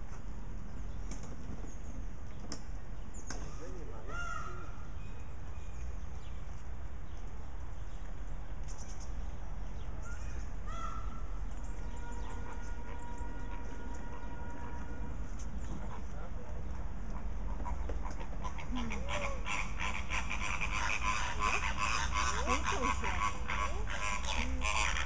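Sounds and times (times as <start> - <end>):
flamingos honking: 10.8 - 25.0.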